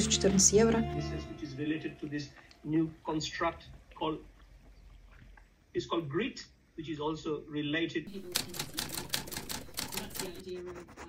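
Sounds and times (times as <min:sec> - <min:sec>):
rapid crisp clicks: 0:08.1 - 0:10.5.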